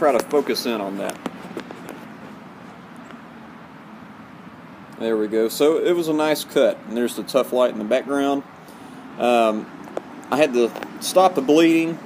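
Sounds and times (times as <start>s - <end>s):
background noise: 0.0s - 12.0s.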